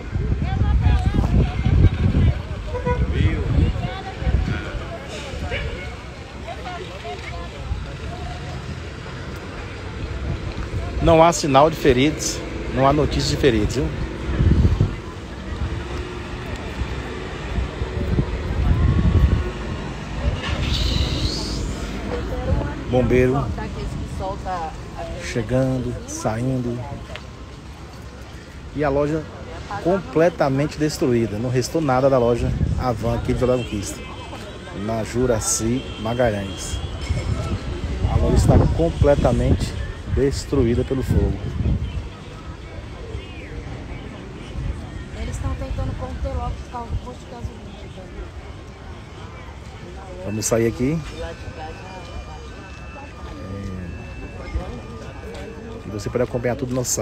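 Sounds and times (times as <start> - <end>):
vehicle engine rumbling: 0.0 - 34.8
distant voices: 0.0 - 57.0
background voices: 3.5 - 28.0.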